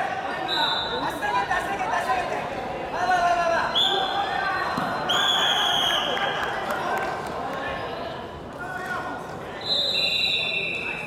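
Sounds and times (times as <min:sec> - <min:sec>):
voices in a hall: 0:00.0 - 0:11.0.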